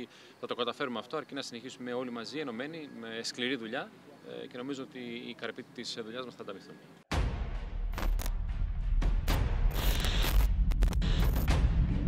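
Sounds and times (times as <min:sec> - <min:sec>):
glitchy crackles: 0:08.0 - 0:08.3, 0:09.7 - 0:11.5
short hissing bursts: 0:09.7 - 0:10.5.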